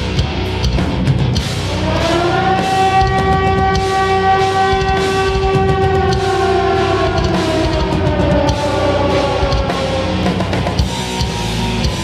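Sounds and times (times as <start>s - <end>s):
heavy metal band playing: 0.0s - 12.0s
long held guitar note: 1.7s - 10.8s.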